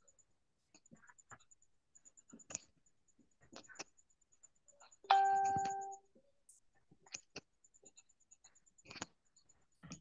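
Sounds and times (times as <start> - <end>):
bell-like chime: 5.1 - 6.0.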